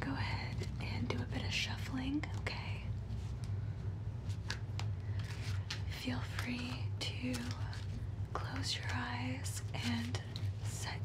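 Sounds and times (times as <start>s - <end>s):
cards being shuffled: 4.2s - 10.8s.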